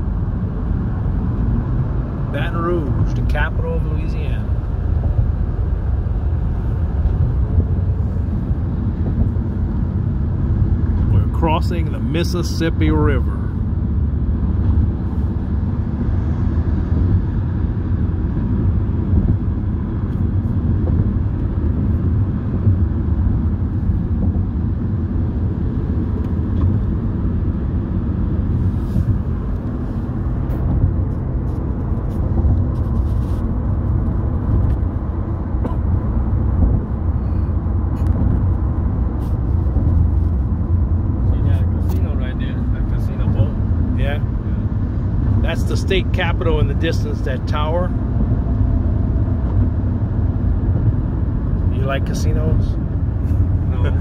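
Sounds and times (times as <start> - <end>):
car cabin road rumble: 0.0 - 54.0.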